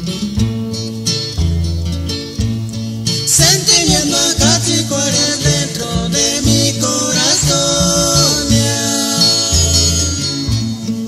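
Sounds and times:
string band folk song: 0:00.2 - 0:11.0.

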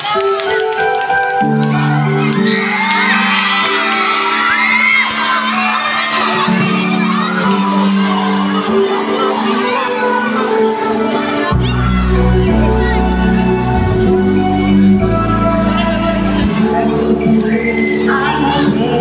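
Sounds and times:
children shouting: 0:01.4 - 0:13.6
audience cheering and whooping: 0:02.1 - 0:09.2
music with low chords: 0:11.5 - 0:19.0.

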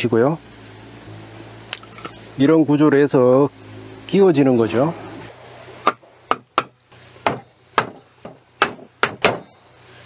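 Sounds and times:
hammer knocking on wood: 0:05.8 - 0:09.5.

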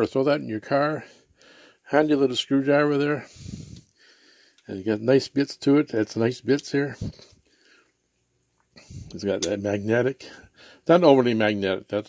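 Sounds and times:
man speaking: 0:00.0 - 0:01.2, 0:01.9 - 0:03.7, 0:04.7 - 0:07.4, 0:08.8 - 0:12.0.

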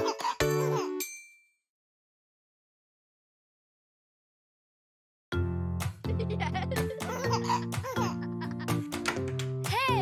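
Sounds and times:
baby giggling: 0:06.1 - 0:08.8.

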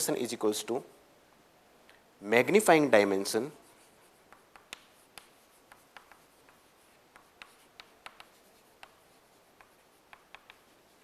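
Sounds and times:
chalk tapping and scratching: 0:03.4 - 0:11.0.

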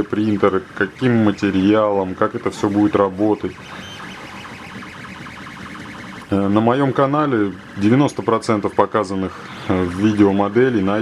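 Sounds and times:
printer stepper motors whining: 0:00.0 - 0:10.9.

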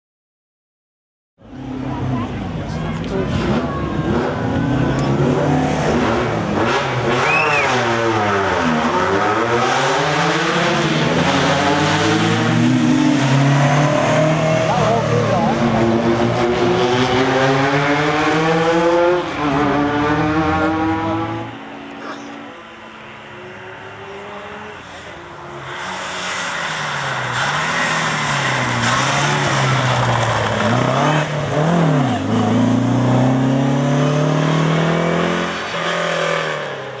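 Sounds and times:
rally car engine revving: 0:01.5 - 0:37.0.

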